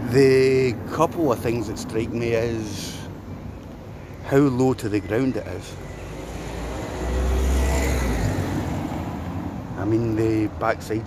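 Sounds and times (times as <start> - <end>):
vehicle engine rumble passing: 5.5 - 10.6.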